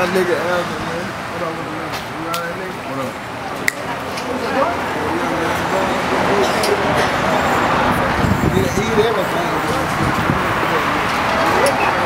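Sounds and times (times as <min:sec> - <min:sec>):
faint voices: 0:00.0 - 0:12.0
road traffic noise: 0:00.0 - 0:12.0
vehicle passing close by: 0:04.5 - 0:12.0.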